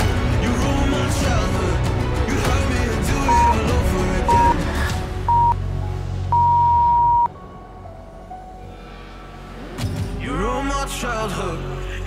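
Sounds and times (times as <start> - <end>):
pop music: 0.0 - 5.6, 10.0 - 12.0
timer beeps: 3.3 - 3.7, 4.3 - 4.6, 5.3 - 5.6, 6.3 - 7.3.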